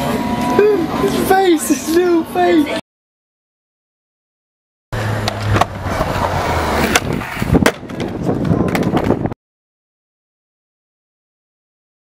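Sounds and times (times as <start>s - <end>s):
skateboard wheels rolling on concrete: 5.0s - 9.4s
skateboard clacking on ground: 5.2s - 9.4s.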